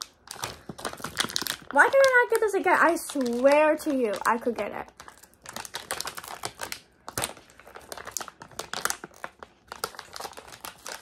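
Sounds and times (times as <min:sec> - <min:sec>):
toy packaging crinkling: 0:00.0 - 0:11.0.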